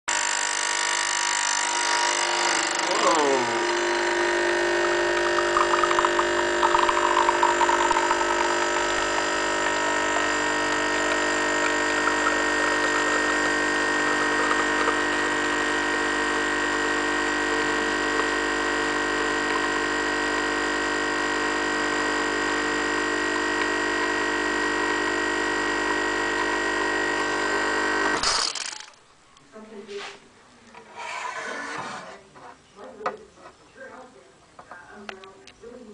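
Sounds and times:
espresso machine pump humming: 0.6s - 28.9s.

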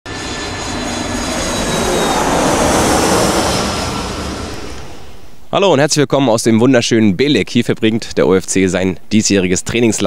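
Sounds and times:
aircraft engine rushing overhead: 0.1s - 5.9s.

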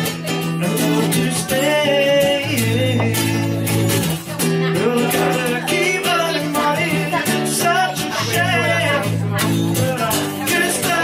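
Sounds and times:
acoustic guitar strummed: 0.0s - 11.0s
man singing: 0.2s - 11.0s.

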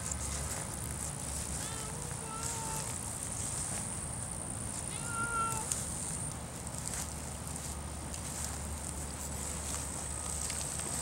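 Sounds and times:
cat meowing: 1.5s - 2.9s, 4.9s - 5.7s.

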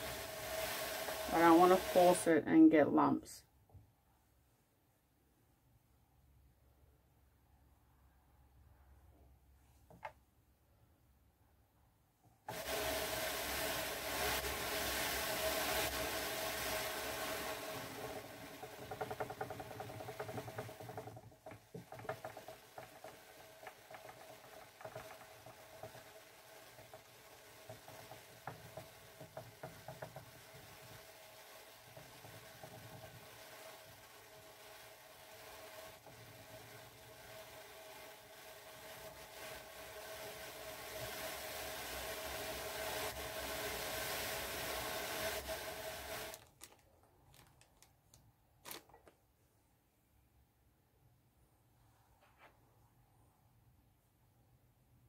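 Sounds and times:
drum carder drums whirring: 0.0s - 2.3s.

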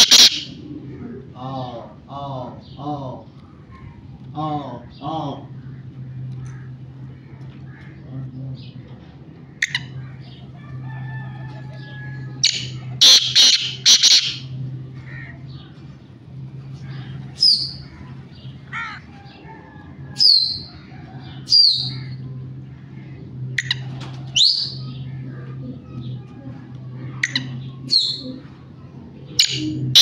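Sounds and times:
bird calling harshly: 0.0s - 0.6s, 12.2s - 15.7s, 29.4s - 30.0s
high downward-sliding bird calls: 0.0s - 1.7s, 9.4s - 30.0s
steady low hum: 0.0s - 30.0s.

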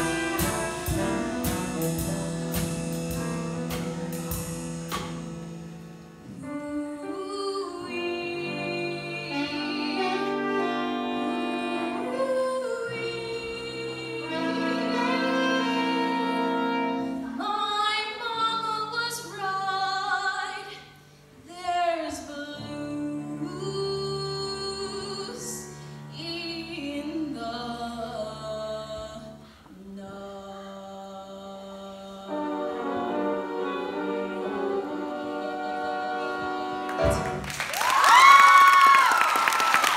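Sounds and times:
live band final chord: 0.0s - 6.2s
instrumental accompaniment: 0.0s - 19.6s, 32.1s - 37.7s
woman singing jazz-blues: 0.0s - 37.5s.

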